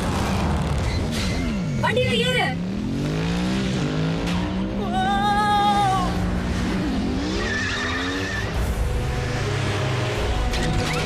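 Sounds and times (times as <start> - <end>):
sports car engines revving: 0.0 - 11.0
tire squeal: 6.5 - 11.0.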